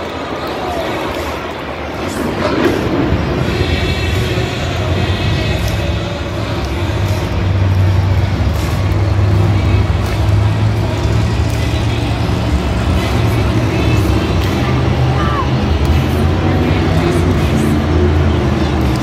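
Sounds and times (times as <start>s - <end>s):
monster truck engines running hard: 0.0s - 19.0s.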